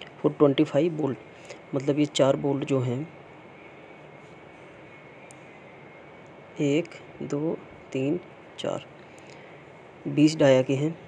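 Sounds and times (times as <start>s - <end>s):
faint high whine: 0.0s - 11.0s
low background noise: 0.0s - 11.0s.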